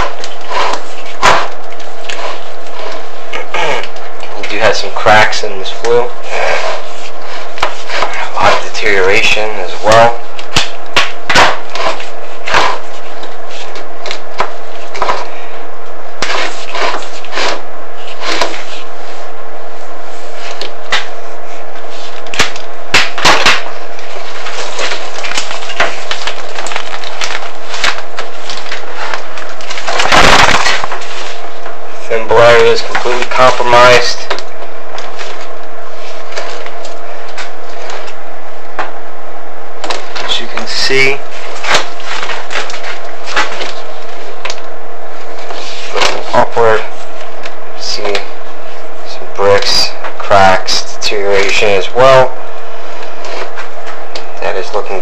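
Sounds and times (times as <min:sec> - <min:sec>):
faint steady hum: 0:00.0 - 0:55.0
camera scraping masonry wall: 0:16.2 - 0:19.0.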